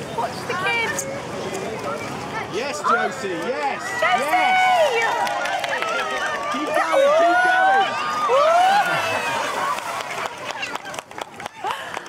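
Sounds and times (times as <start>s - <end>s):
water splashing: 0.0s - 12.0s.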